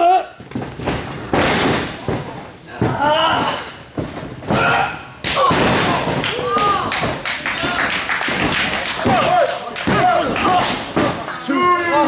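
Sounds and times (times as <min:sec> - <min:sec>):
bodies thudding on mat: 0:00.4 - 0:07.2
people shouting and yelling: 0:02.7 - 0:03.8, 0:04.5 - 0:08.0, 0:08.8 - 0:12.0.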